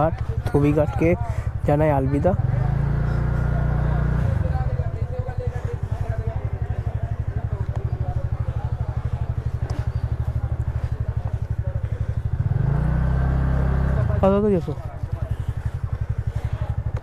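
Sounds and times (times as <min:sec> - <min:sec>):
scooter engine idling: 0:00.0 - 0:17.0.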